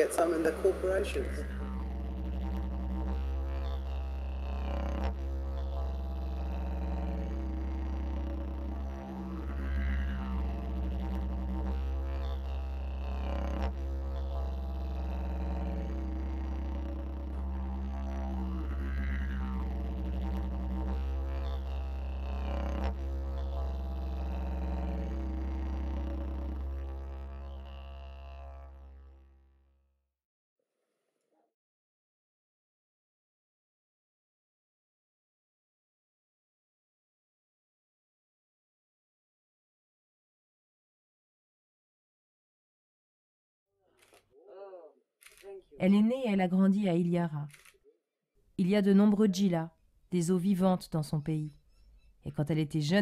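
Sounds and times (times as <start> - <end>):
didgeridoo drone: 0.0 - 29.5.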